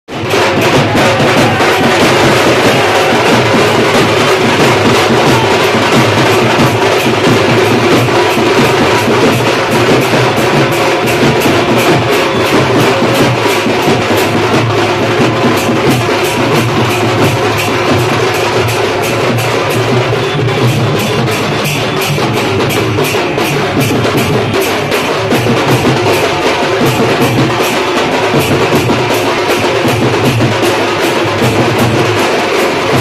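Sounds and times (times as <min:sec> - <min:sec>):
loud steady drumming: 0:00.1 - 0:33.0.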